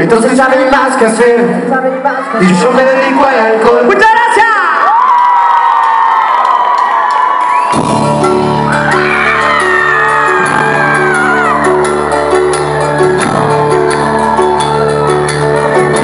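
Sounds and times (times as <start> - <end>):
crowd whooping and shouting: 4.3 - 16.0
cumbia band playing: 7.7 - 16.0.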